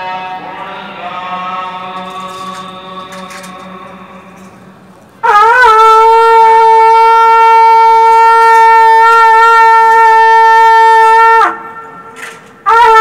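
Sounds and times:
long metal horn blown: 5.2 - 13.0.

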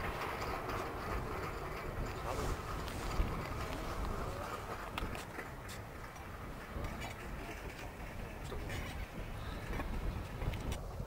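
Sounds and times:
distant voices: 0.0 - 10.8
steam locomotive rumble and hiss: 0.0 - 11.0.

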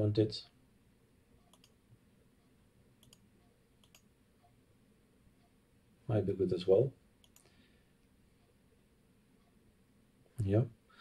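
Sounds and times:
computer mouse clicks: 1.4 - 1.8, 3.0 - 4.5, 7.2 - 7.6.

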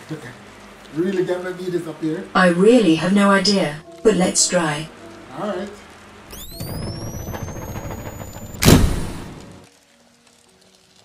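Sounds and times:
faint held tones: 6.3 - 9.4
low rumble: 6.3 - 9.6
rising whines: 6.3 - 9.6
loud burst of noise: 6.3 - 9.7.

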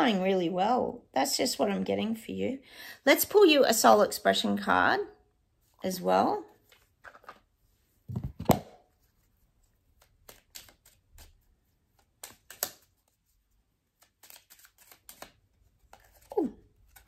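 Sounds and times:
cards shuffling and flicking: 9.8 - 17.0.

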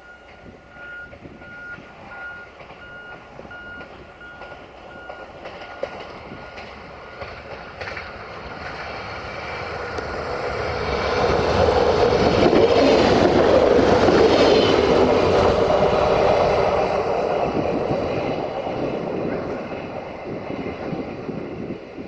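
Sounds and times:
diesel train approaching: 0.0 - 22.0.

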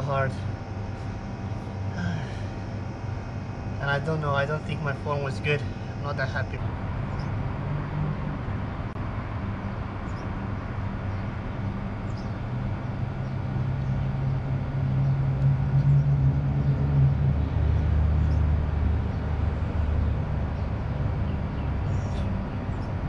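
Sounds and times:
steady low rumble: 0.0 - 23.0.

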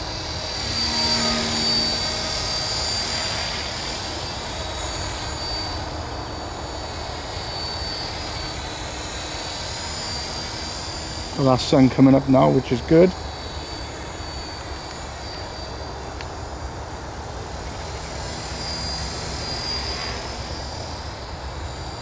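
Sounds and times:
model helicopter motor whine: 0.0 - 22.0
rotor rushing: 0.0 - 22.0.

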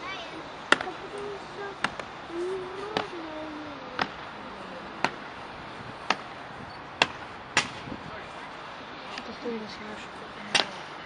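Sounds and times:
low crowd chatter: 0.0 - 6.7.

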